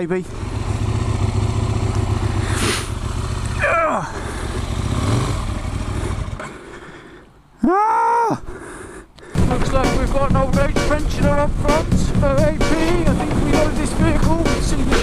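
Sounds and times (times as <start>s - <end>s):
motorcycle engine rumbling: 0.0s - 7.2s, 9.4s - 15.0s.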